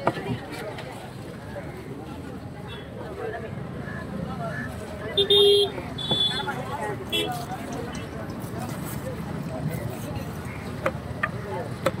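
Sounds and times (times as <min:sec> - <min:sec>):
steady background noise: 0:00.0 - 0:12.0.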